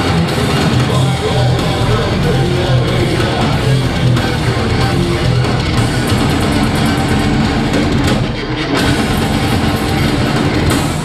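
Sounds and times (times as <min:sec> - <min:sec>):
distorted electric guitar: 0:00.0 - 0:11.0
fast drum kit: 0:00.0 - 0:11.0.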